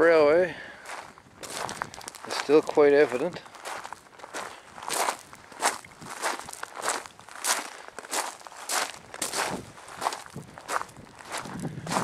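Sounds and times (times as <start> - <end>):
footsteps through dry grass: 0.4 - 12.0.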